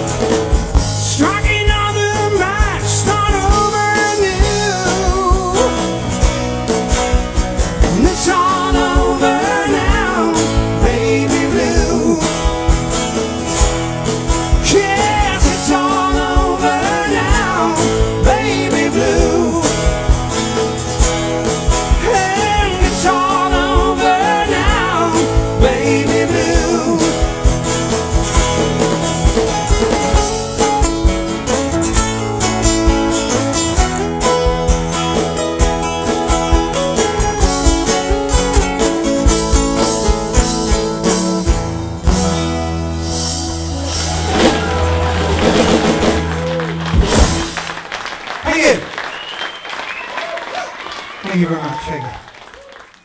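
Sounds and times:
strummed acoustic guitar: 0.0 - 47.8
bass: 0.0 - 53.0
person singing: 1.1 - 6.0, 7.8 - 12.6, 14.6 - 20.2, 21.9 - 27.5
applause: 44.3 - 53.0.

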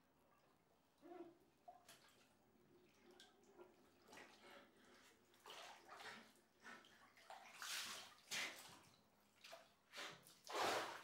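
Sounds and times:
bathtub water sloshing: 1.4 - 11.0.

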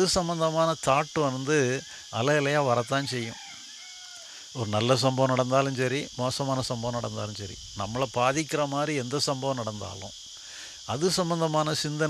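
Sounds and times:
insects chirring: 0.0 - 12.0
man speaking into a microphone: 4.6 - 10.1, 10.9 - 12.0.

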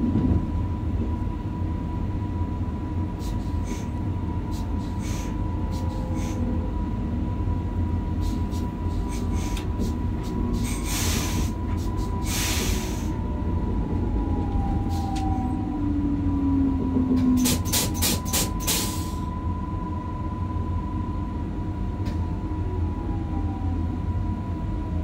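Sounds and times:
train rumbling on rails: 0.0 - 25.0.

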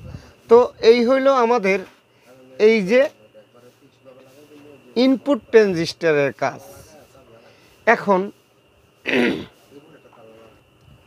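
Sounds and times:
man clearing his throat: 9.0 - 9.6.

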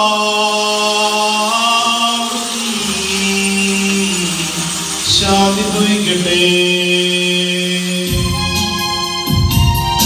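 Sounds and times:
liturgical chant held note: 0.0 - 8.5.

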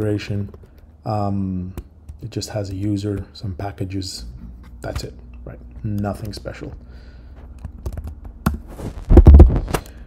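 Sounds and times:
low steady hum: 0.0 - 10.0
computer keyboard keystrokes: 7.6 - 8.6.

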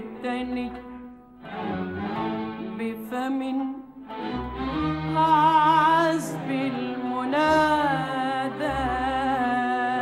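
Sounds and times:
bowed strings melody: 0.0 - 10.0.

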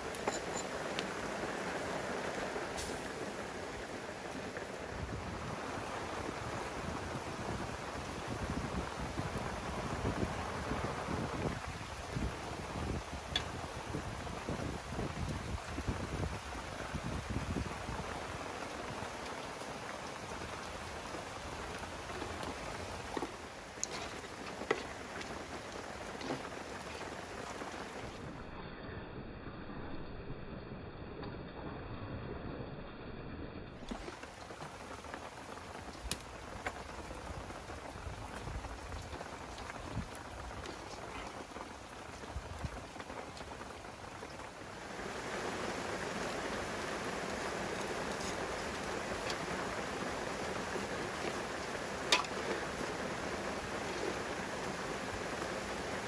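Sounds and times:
wood fire crackling: 0.0 - 28.6, 33.7 - 56.0
water simmering in pot: 0.0 - 28.7, 33.7 - 56.0.

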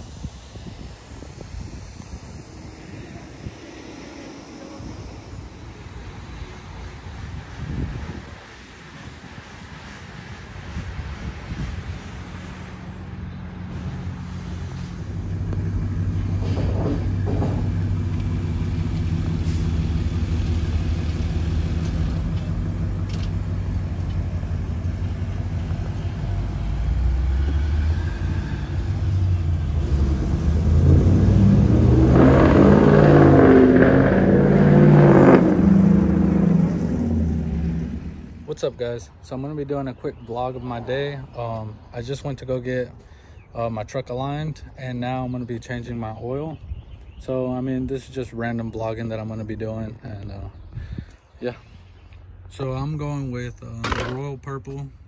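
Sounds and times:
pickup truck engine revving: 12.0 - 38.5.

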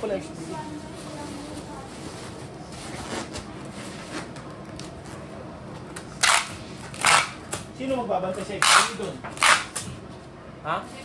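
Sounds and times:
packing tape pulled from dispenser: 6.2 - 7.6, 8.6 - 9.9.

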